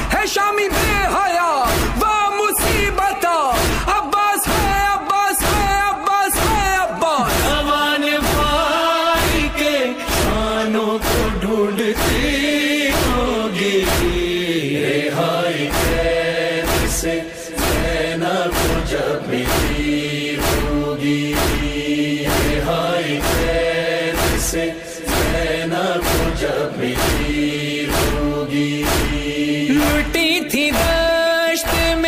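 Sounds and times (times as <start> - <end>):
steady percussive beat: 0.0 - 14.6, 15.6 - 32.0
male voices chanting: 0.0 - 32.0.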